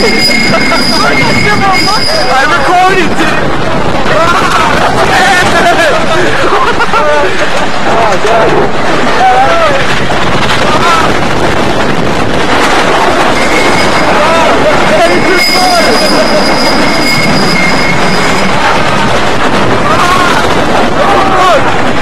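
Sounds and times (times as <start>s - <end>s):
high wheel squeal: 0.0s - 3.4s, 13.3s - 18.9s
riders yelling and screaming: 0.0s - 11.3s, 12.9s - 22.0s
roller coaster rattling on track: 0.0s - 22.0s.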